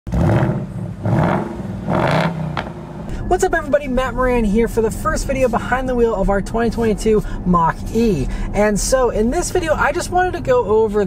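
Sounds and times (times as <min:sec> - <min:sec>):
car engine revving: 0:00.1 - 0:11.0.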